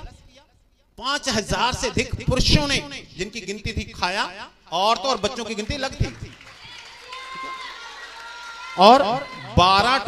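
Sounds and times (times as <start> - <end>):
man preaching through microphone: 0.0 - 6.3, 8.8 - 10.0.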